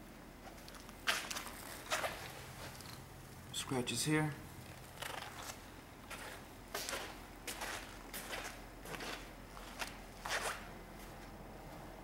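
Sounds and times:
footsteps: 0.4 - 2.8, 4.7 - 11.9.

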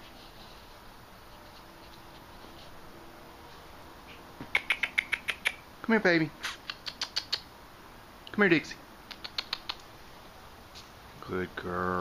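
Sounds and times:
person making clicking sounds: 4.4 - 5.6, 6.4 - 7.5, 9.1 - 9.9.

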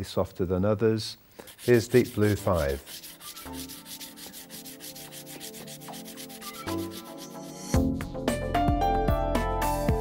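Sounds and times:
pastel stick scratching paper: 1.4 - 7.8
music: 2.3 - 10.0.

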